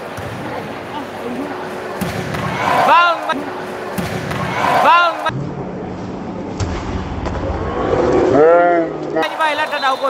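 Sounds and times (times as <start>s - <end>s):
crowded sports hall noise: 0.0s - 10.0s.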